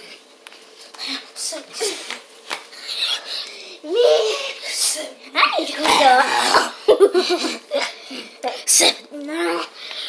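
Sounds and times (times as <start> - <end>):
young person coughing: 5.8 - 7.9.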